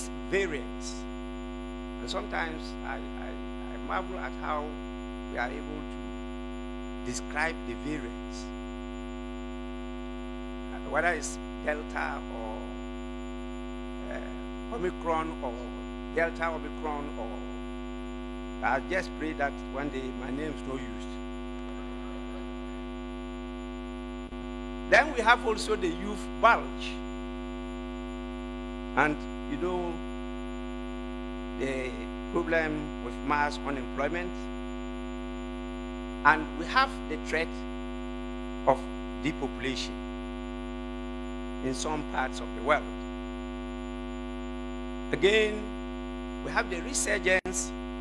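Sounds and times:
man's voice: 0.0 - 1.0, 2.0 - 4.7, 5.3 - 5.8, 7.1 - 8.5, 10.7 - 12.7, 14.0 - 17.4, 18.6 - 21.2, 24.9 - 27.0, 29.0 - 30.0, 31.6 - 34.4, 36.3 - 37.6, 38.7 - 39.9, 41.6 - 42.9, 45.1 - 45.7, 46.4 - 47.7
electrical hum: 0.0 - 48.0.

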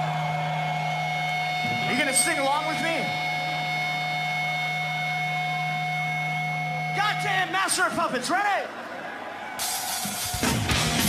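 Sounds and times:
electric hum: 0.1 - 7.6
held amplifier tones: 0.2 - 8.2.

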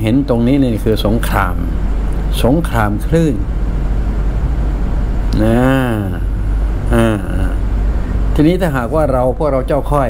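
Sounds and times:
man speaking: 0.0 - 3.5, 5.3 - 7.6.

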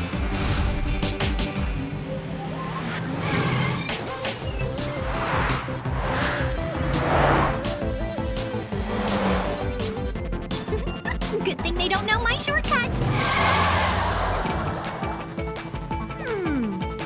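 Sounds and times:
upbeat cartoon music: 0.0 - 17.0
racing vehicles rushing past: 2.4 - 10.1, 12.8 - 15.7.

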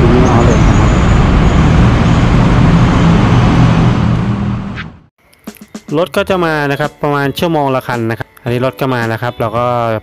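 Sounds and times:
loud road traffic: 0.0 - 5.1
vehicle engine humming low: 0.0 - 5.1.

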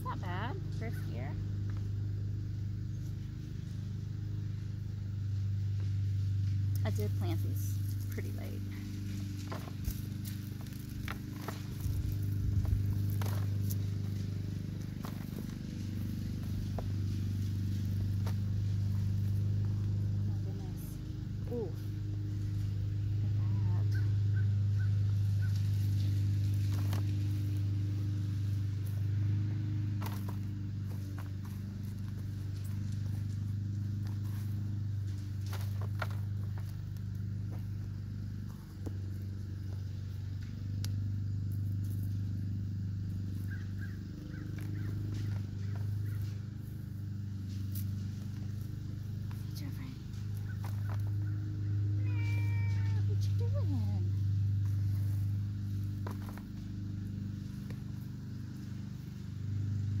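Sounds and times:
steady low hum: 0.0 - 60.0
rustles and clicks: 5.0 - 60.0
cat meowing: 52.0 - 53.1.

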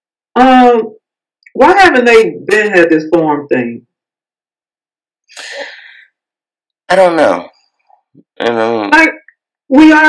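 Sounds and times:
breathy vocal burst: 5.3 - 6.1.

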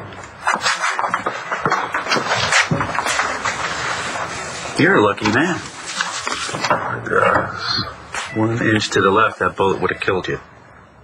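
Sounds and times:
people shuffling and rustling: 0.0 - 10.2.

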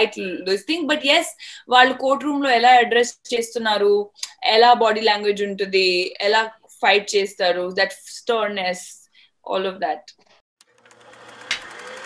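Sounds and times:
rapid mechanical clatter: 10.6 - 12.0.

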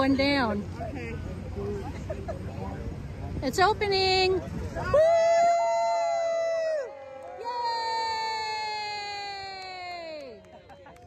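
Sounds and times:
people whooping: 4.8 - 11.0.

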